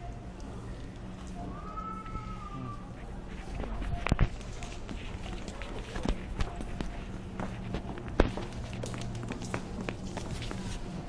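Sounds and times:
steady low hum: 0:00.0 - 0:11.0
footsteps: 0:02.9 - 0:11.0.

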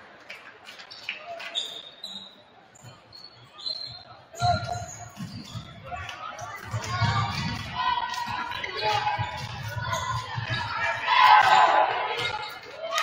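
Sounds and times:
sneakers squeaking: 0:00.8 - 0:11.1.

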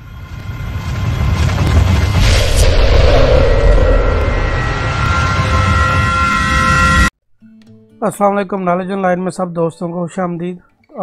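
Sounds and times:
deep noisy rumble: 0:00.8 - 0:07.1.

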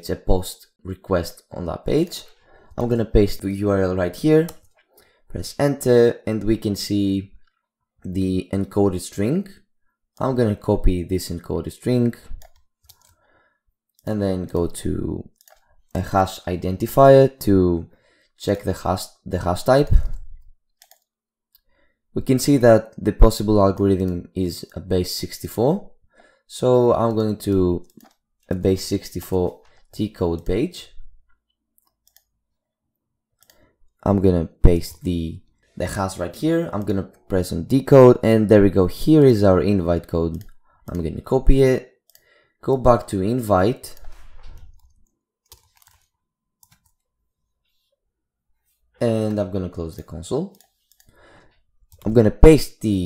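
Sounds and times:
man speaking: 0:00.0 - 0:04.7, 0:05.3 - 0:07.4, 0:08.0 - 0:09.6, 0:10.2 - 0:12.4, 0:14.0 - 0:15.4, 0:16.0 - 0:20.3, 0:22.2 - 0:25.9, 0:26.5 - 0:31.1, 0:34.0 - 0:41.9, 0:42.6 - 0:44.5, 0:49.0 - 0:50.6, 0:52.0 - 0:53.0
keyboard and mouse clicks: 0:04.3 - 0:05.1, 0:11.3 - 0:13.2, 0:13.9 - 0:16.2, 0:19.8 - 0:21.7, 0:26.9 - 0:30.7, 0:31.3 - 0:32.4, 0:33.4 - 0:35.1, 0:36.6 - 0:37.4, 0:40.0 - 0:40.6, 0:43.8 - 0:47.1, 0:49.1 - 0:52.2.

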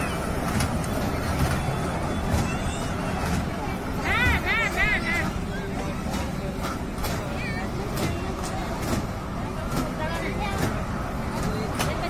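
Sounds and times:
clacks: 0:00.0 - 0:12.0
low rumble of rides: 0:00.0 - 0:12.0
people's voices: 0:00.0 - 0:12.0.

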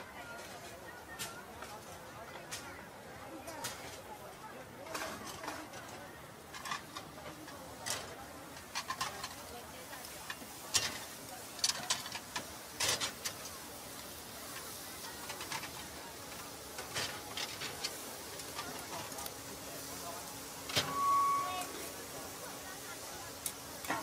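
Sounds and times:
crowd chatter: 0:00.0 - 0:24.0
metal spatulas clacking on griddle: 0:04.8 - 0:09.6, 0:10.2 - 0:13.5, 0:14.6 - 0:19.1, 0:23.4 - 0:24.0.

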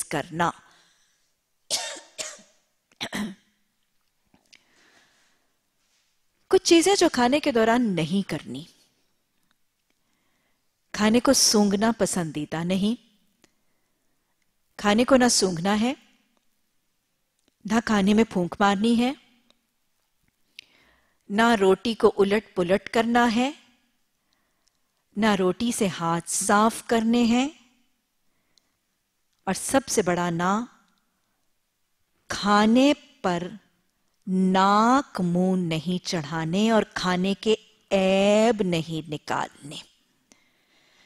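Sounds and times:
woman speaking: 0:00.0 - 0:00.7, 0:06.5 - 0:08.8, 0:10.9 - 0:13.1, 0:14.8 - 0:16.1, 0:17.6 - 0:19.3, 0:21.3 - 0:23.7, 0:25.2 - 0:27.7, 0:29.5 - 0:30.8, 0:32.3 - 0:33.7, 0:34.3 - 0:40.0
woman coughing: 0:01.7 - 0:03.5
faint intake of breath: 0:40.3 - 0:41.0.

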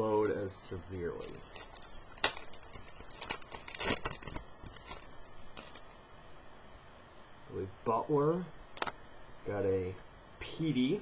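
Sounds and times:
foil wrapper crinkling and tearing: 0:01.0 - 0:05.9
cards being handled: 0:01.1 - 0:05.9.

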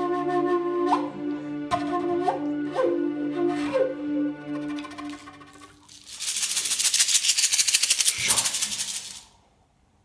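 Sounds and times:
hand rattle shaken fast: 0:05.8 - 0:09.3.

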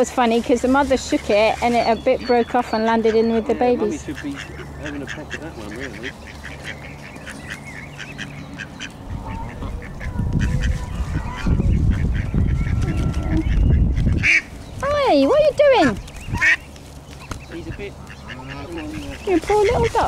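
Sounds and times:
ducks quacking: 0:00.3 - 0:20.0
geese honking: 0:00.6 - 0:16.7, 0:17.5 - 0:20.0.

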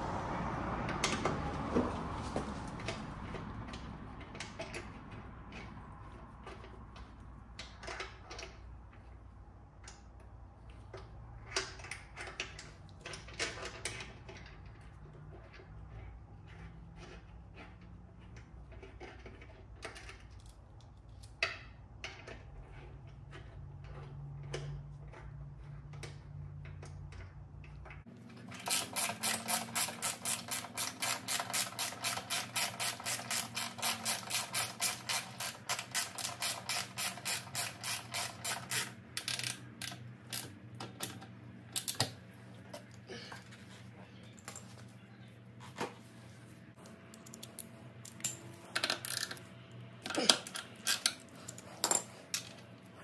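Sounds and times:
ratchet wrench clicking: 0:28.6 - 0:40.5.

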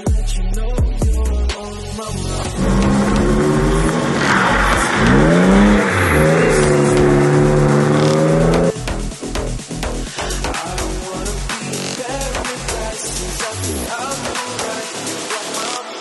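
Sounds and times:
car engine at high revs: 0:02.2 - 0:09.2.

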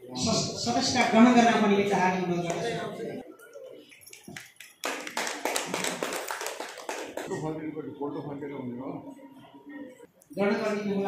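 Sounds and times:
audience clapping: 0:04.0 - 0:07.4.

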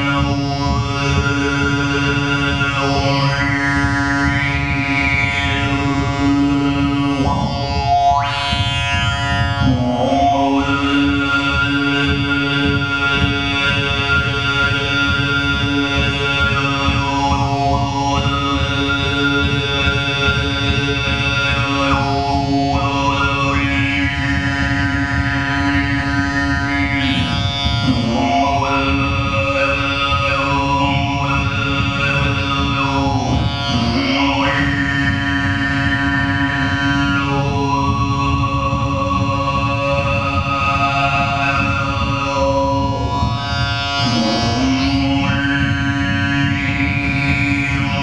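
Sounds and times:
throat singing drone with whistling overtone: 0:00.0 - 0:48.0.

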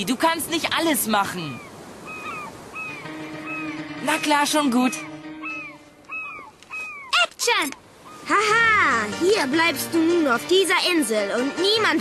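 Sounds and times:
seagulls crying: 0:00.5 - 0:09.5.

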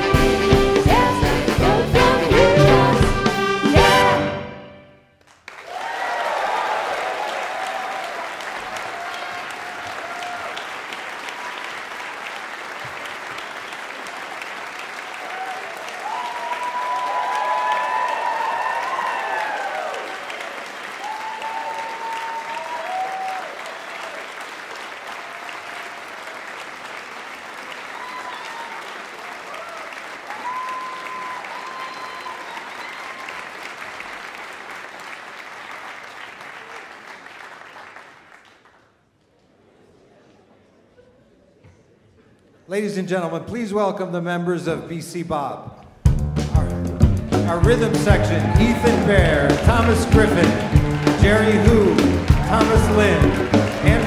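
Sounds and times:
audience applauding: 0:05.2 - 0:38.9, 0:47.1 - 0:54.0
whoops and cheers: 0:05.6 - 0:10.7, 0:15.2 - 0:24.2, 0:27.8 - 0:33.6, 0:48.2 - 0:53.2.

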